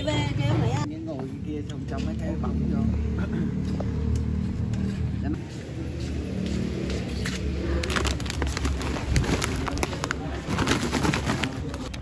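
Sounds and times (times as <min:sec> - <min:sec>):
vehicle engine rumbling: 0:00.0 - 0:12.0
faint voices: 0:05.4 - 0:12.0.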